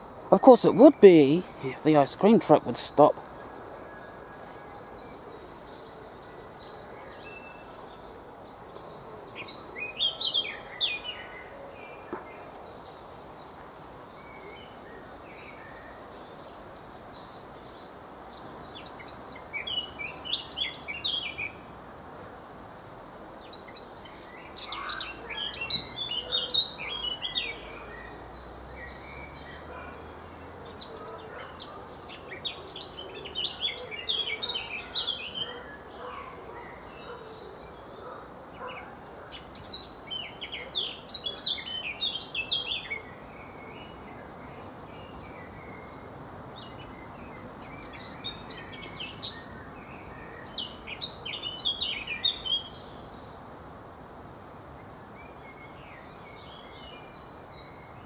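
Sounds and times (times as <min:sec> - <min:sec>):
distant traffic hum: 0:00.0 - 0:05.7
songbirds twittering: 0:00.0 - 0:58.0.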